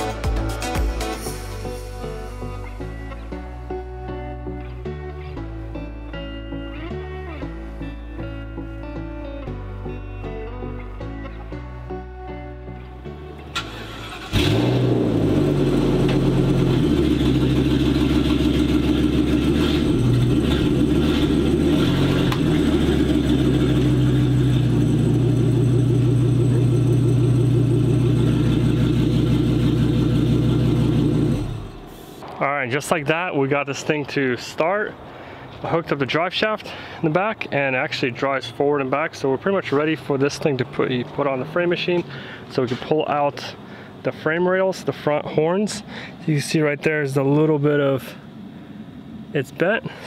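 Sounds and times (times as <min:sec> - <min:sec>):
background music: 0:00.0 - 0:17.6
engine starting and idling: 0:13.5 - 0:32.2.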